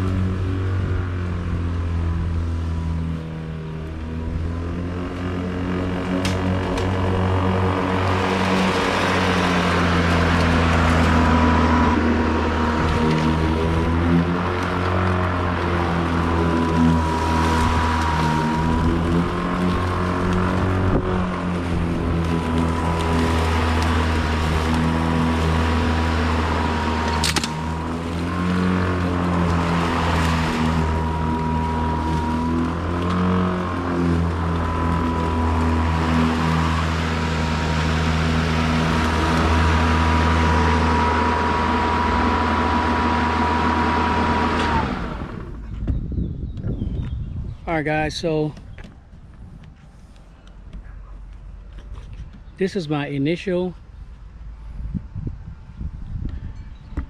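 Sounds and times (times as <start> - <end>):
mower motor spinning down: 0.0 - 45.8
battery lawn mower humming: 0.0 - 45.9, 49.8 - 57.0.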